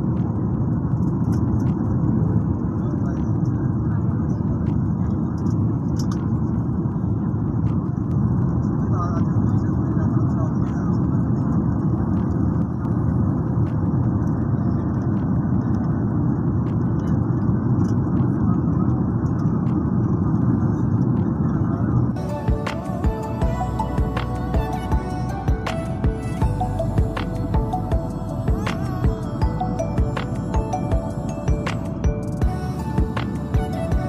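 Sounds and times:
jet airliner cabin noise: 0.0s - 34.0s
music: 21.0s - 34.0s.

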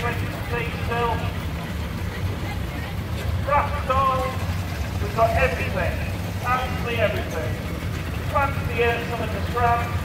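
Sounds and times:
steam roller low rumble: 0.0s - 10.0s.

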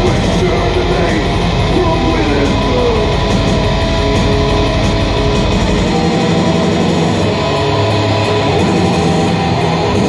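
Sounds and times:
bass guitar: 0.0s - 10.0s
distorted electric guitars: 0.0s - 10.0s.

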